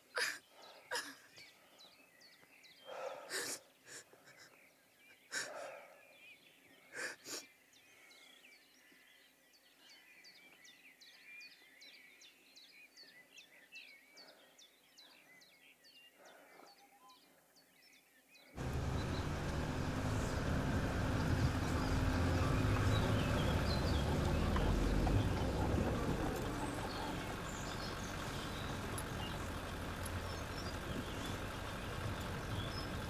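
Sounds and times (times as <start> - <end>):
woman sobbing breaths: 0.2 - 1.5, 2.9 - 4.6, 5.2 - 5.8, 6.9 - 7.5
small bird chirping: 18.5 - 33.0
car engine and road noise: 18.6 - 33.0.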